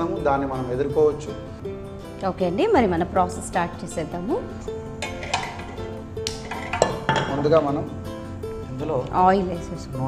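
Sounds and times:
background music: 0.0 - 10.0
pan clanking on metal grate: 5.0 - 7.6.

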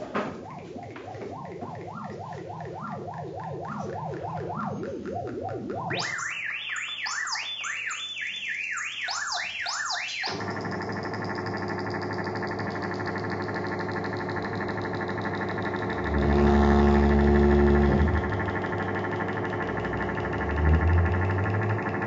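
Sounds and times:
low hum: 0.0 - 6.2, 14.4 - 22.0
dense drone of held tones: 0.0 - 6.3, 14.6 - 22.0
synthesizer pitch sweeps: 0.0 - 10.2, 15.5 - 22.0.

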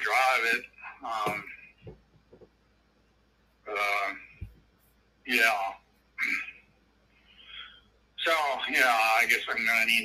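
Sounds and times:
faint breathy sound: 6.4 - 8.0.

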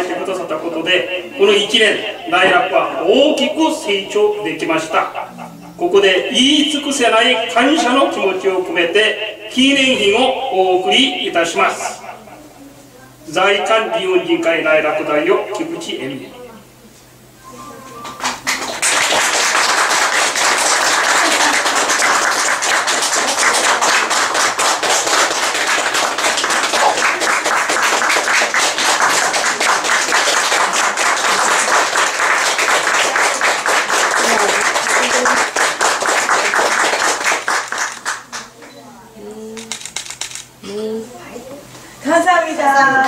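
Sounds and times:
audience applauding: 17.9 - 38.5.

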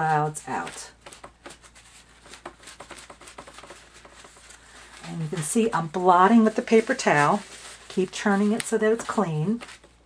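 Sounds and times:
paper towel dabbing paper: 0.0 - 10.0.

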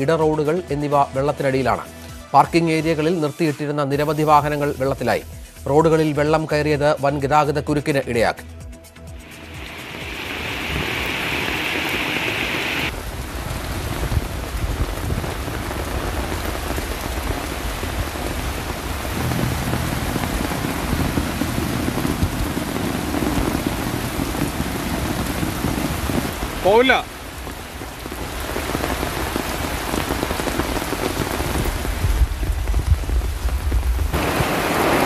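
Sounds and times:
heavy rain on a flooded street: 9.2 - 35.0
low rumble: 19.0 - 26.3.

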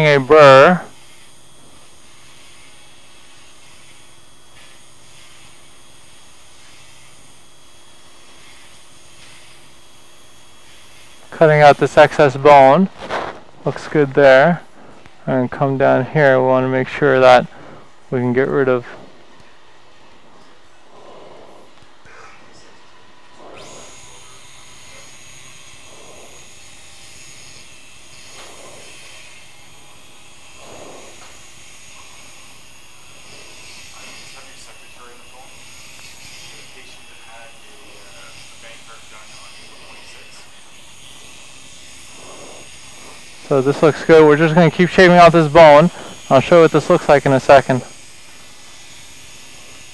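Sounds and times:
thin high whine of bone burr: 20.4 - 49.9.

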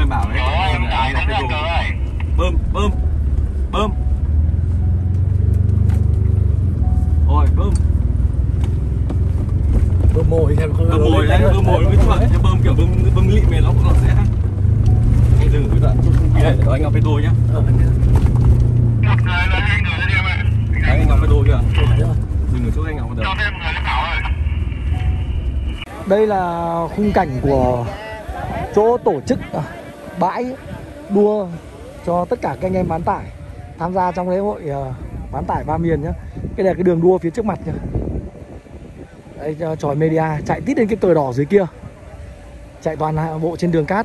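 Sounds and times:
men talking: 0.0 - 4.1, 7.3 - 7.9, 10.1 - 25.2, 25.8 - 44.0
truck engine rumbling: 0.0 - 44.0.

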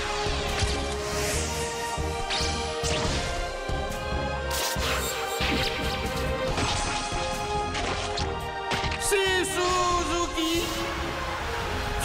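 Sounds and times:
instrumental theme music: 0.0 - 12.0.

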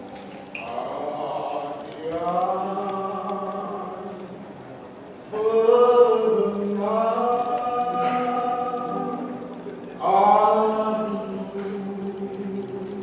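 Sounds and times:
male group singing in harmony: 0.6 - 4.2, 5.3 - 13.0.

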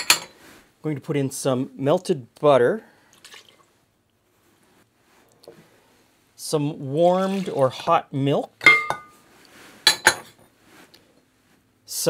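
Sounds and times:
kitchenware clink: 0.0 - 0.4, 8.6 - 9.2, 9.9 - 10.4
faint handling sounds: 4.1 - 6.4, 8.9 - 11.9.

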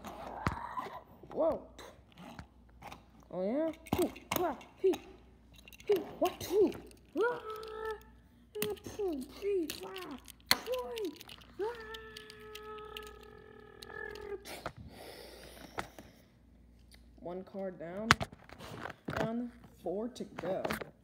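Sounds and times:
toy cars knocking: 5.7 - 8.0, 8.6 - 14.4.

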